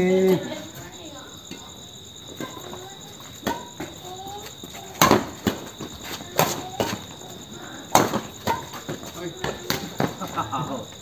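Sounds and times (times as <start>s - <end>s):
crickets chirping: 0.0s - 11.0s
rackets striking shuttlecock: 3.4s - 3.9s, 5.0s - 5.7s, 7.9s - 10.2s.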